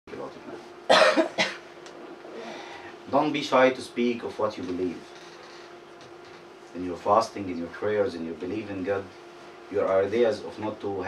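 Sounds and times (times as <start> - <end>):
person coughing: 0.9 - 1.6.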